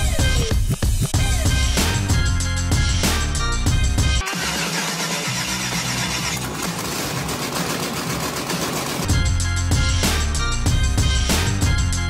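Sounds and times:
background music: 0.0 - 8.0, 9.0 - 12.0.

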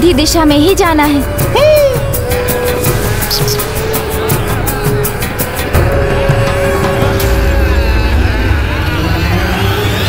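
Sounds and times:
fast rattling percussion beat: 3.2 - 3.7.

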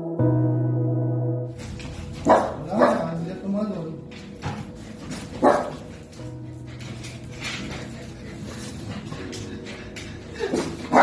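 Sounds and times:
small dog barking: 2.3 - 3.1.

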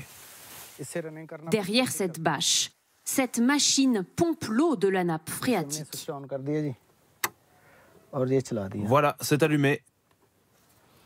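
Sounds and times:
faint hiss: 0.0 - 4.2, 6.0 - 9.8.

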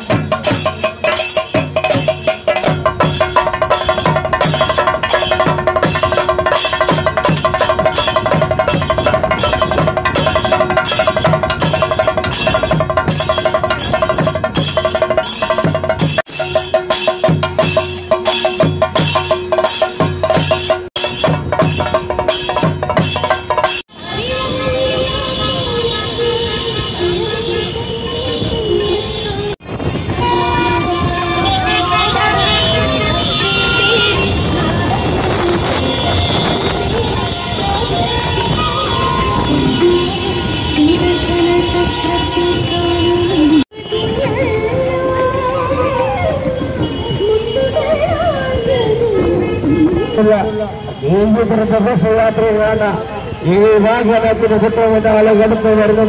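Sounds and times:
motorbikes and road traffic: 0.0 - 16.1, 21.4 - 56.0
rhythmic percussion music: 0.0 - 25.3, 29.9 - 42.3
long wavering tooting tones: 30.2 - 42.9.

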